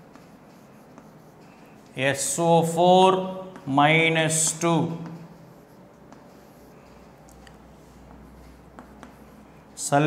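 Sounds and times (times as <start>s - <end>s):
chalk tapping and scraping: 0.0s - 10.0s
man talking: 2.0s - 5.3s, 9.8s - 10.0s.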